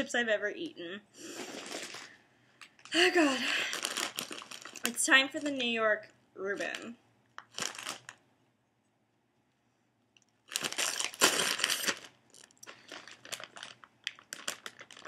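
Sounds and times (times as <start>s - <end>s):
potato chip bag crinkling: 1.3s - 5.6s, 6.5s - 8.2s, 10.4s - 15.0s.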